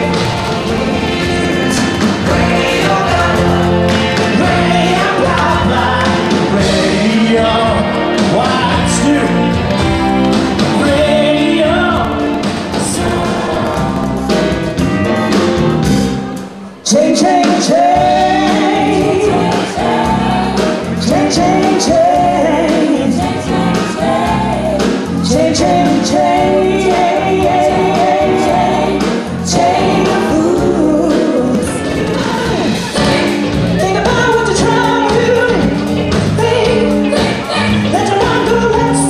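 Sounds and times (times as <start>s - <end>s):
band on drums and bass guitar: 0.0s - 39.0s
woman singing into a microphone: 36.4s - 39.0s.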